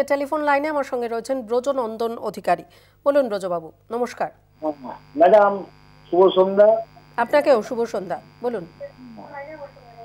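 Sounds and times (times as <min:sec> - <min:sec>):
electrical hum and buzz: 0:00.3 - 0:10.0
thin high whine: 0:04.6 - 0:10.0
speech over telephone line: 0:04.7 - 0:10.0.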